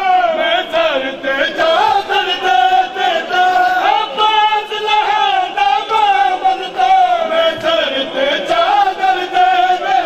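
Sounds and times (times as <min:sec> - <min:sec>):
men chanting a lament: 0:00.0 - 0:10.0.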